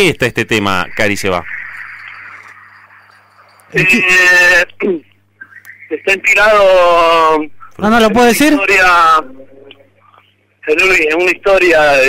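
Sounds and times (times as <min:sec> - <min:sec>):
man's drawn-out hesitation sound: 0:05.8 - 0:10.0.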